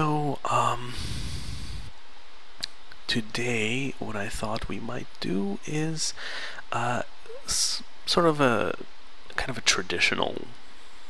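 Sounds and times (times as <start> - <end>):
breath on microphone: 0.9 - 1.9, 6.2 - 6.6.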